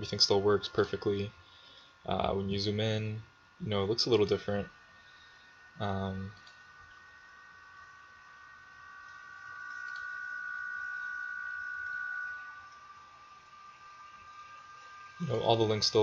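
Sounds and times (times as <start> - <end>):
high-pitched whine: 0.0 - 1.3, 2.0 - 16.0
low hiss: 0.0 - 16.0.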